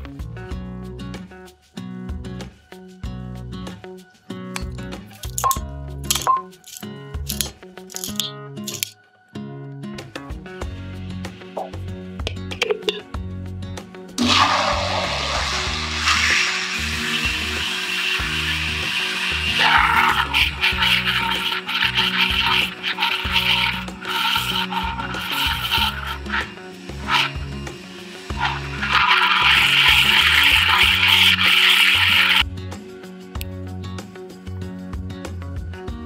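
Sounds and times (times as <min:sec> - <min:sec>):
blender motor running: 0:14.2 - 0:32.4.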